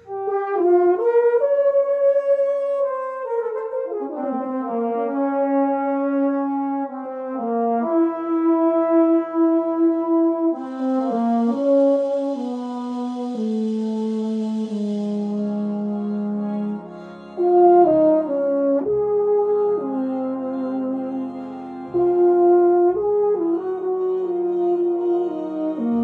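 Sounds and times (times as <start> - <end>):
euphonium melody: 0.0 - 26.0
steady hiss: 10.6 - 18.4.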